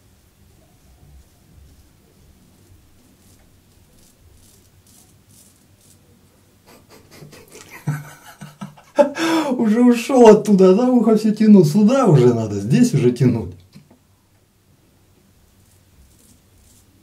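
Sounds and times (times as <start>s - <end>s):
razor scraping stubble: 0.9s - 8.8s, 15.5s - 17.0s
man's voice: 9.0s - 13.6s.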